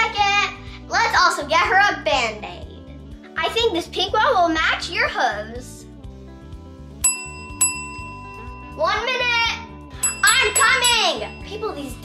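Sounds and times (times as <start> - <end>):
service bell ringing: 7.0 - 12.0.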